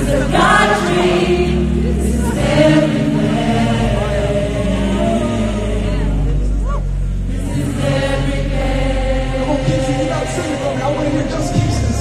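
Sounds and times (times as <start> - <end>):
bass-heavy backing music: 0.0 - 12.0
gospel choir singing: 0.0 - 12.0.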